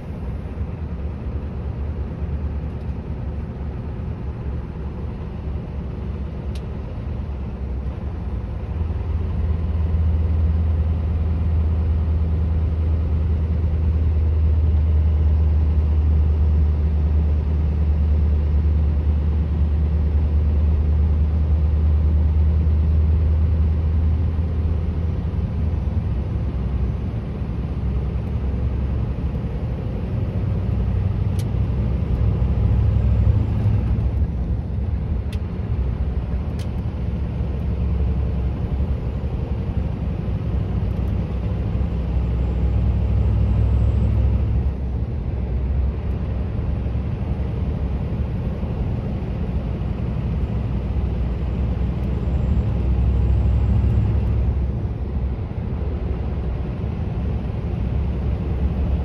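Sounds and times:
road and tyre noise: 0.0 - 59.0
truck engine droning: 0.0 - 59.0.

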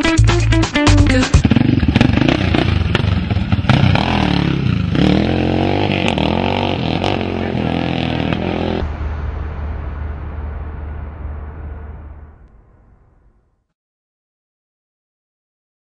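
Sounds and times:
motorcycle engine revving: 1.2 - 12.9.

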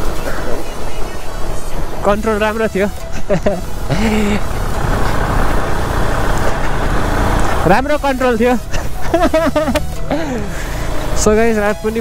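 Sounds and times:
motorcycle engine running: 0.0 - 12.0
road noise: 0.0 - 12.0.

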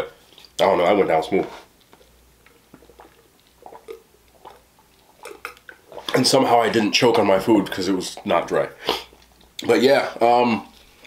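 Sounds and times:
man gulping and swallowing: 1.7 - 9.7.

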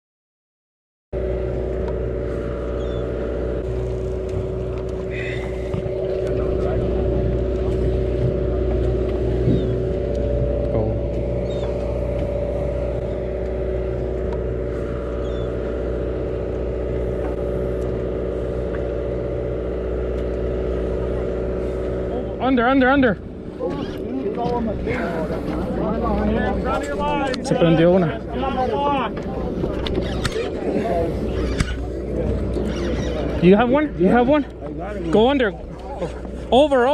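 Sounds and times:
boat engine droning: 1.1 - 36.9.

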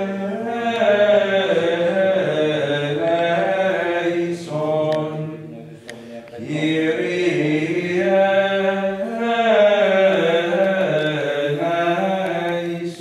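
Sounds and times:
voices singing chant: 0.0 - 13.0.

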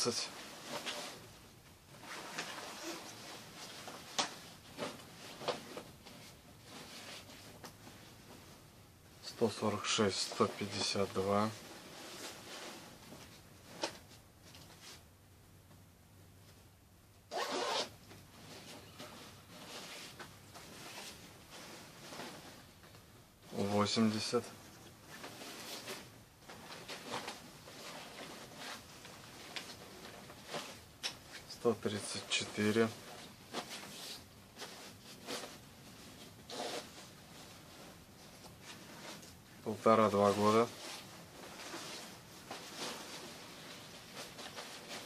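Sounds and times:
jacket zipper pulled open: 2.1 - 3.2, 17.3 - 18.0, 36.5 - 36.9.

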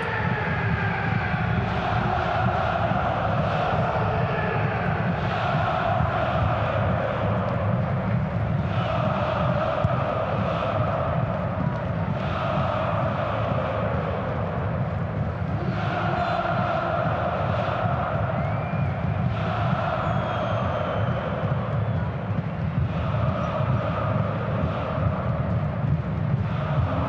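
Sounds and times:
crowd singing chants: 0.0 - 27.0
stadium crowd din: 0.0 - 27.0.

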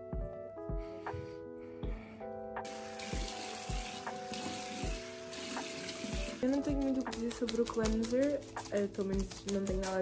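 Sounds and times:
tap water running into sink: 2.6 - 8.4.

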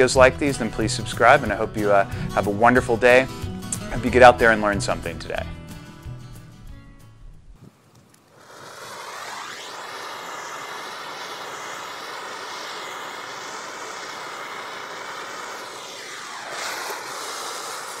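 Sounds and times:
gas torch flame hissing roar: 8.2 - 18.0.

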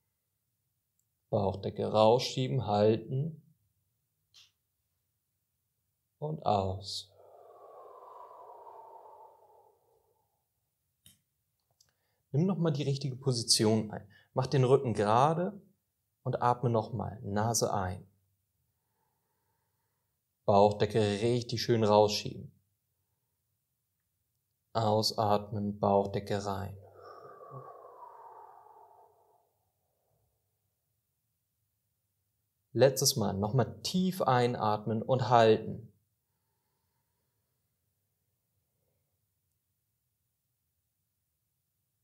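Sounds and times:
man exhaling slowly: 7.1 - 10.4, 26.8 - 30.2.

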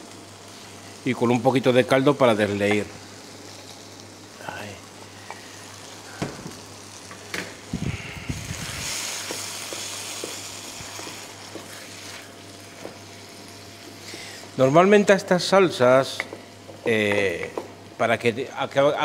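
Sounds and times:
sauce sizzling in a frying pan: 0.0 - 19.0.

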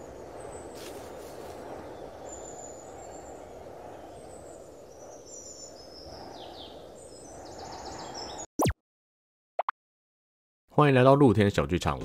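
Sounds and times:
small birds chirping: 0.0 - 8.7.

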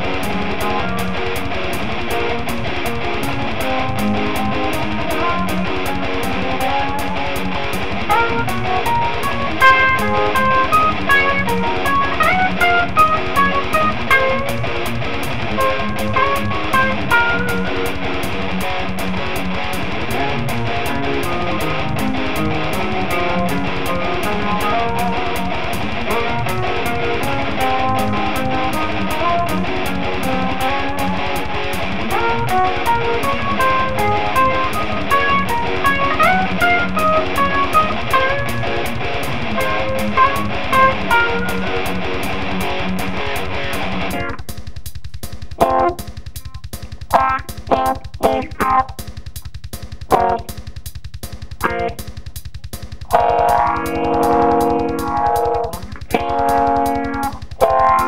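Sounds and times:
drum kit: 0.0 - 58.0
fast melodic guitar lead: 0.0 - 58.0
short band stabs: 0.0 - 58.0.

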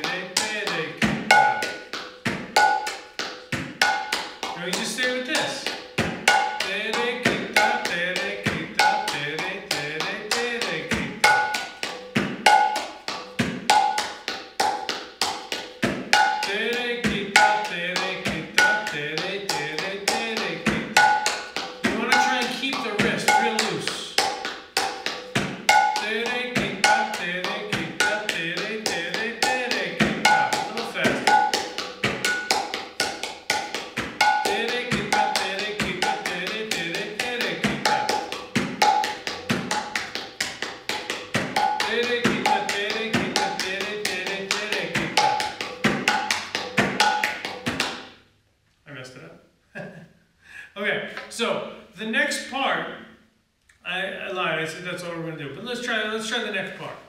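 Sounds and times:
barrel drum played by hand: 0.0 - 48.1.

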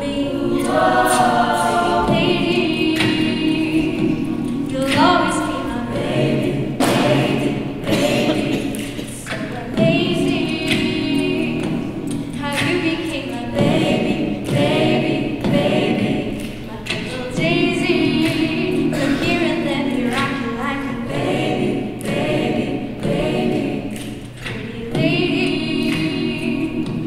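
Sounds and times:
woman singing lead: 0.0 - 6.6, 7.4 - 21.7
a cappella ensemble singing: 0.0 - 27.0
vocal percussion thumps: 0.0 - 27.0.

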